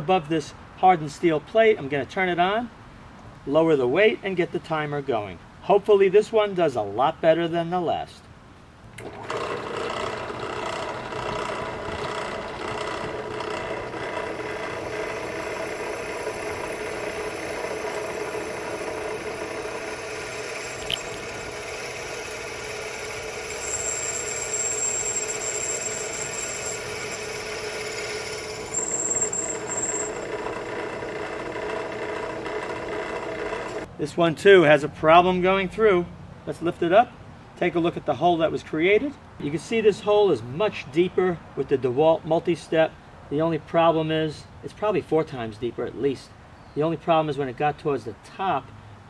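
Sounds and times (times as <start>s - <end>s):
drill press drilling steel: 9.0s - 33.9s
high-pitched drill bit squeal: 13.9s - 31.2s.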